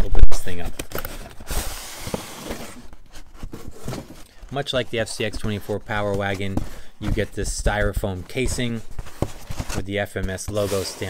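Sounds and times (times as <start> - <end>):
styrofoam rubbing against cardboard: 10.5 - 11.0.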